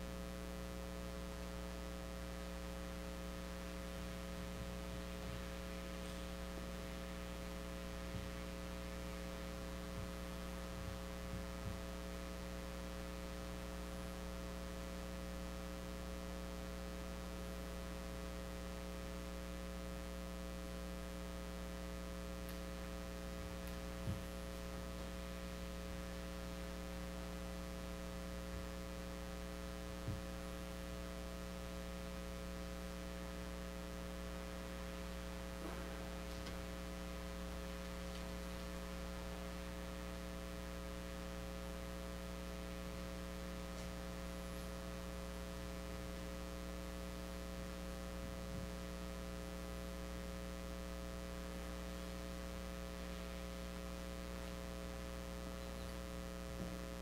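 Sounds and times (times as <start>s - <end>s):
electrical mains hum: 0.0s - 57.0s.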